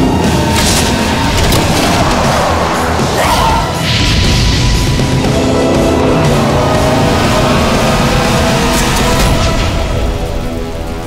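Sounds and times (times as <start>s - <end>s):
film trailer music: 0.0s - 11.0s.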